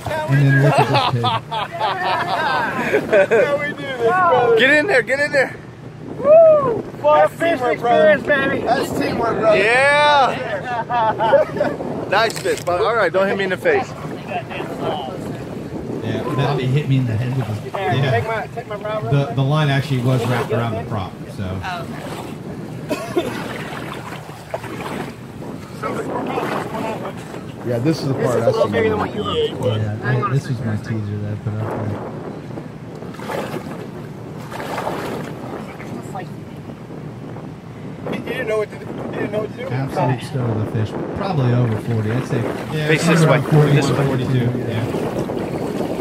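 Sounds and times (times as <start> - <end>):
faint voices: 0.0 - 22.6
wind buffeting microphone: 0.0 - 46.0
person laughing: 0.6 - 3.5, 10.8 - 11.8.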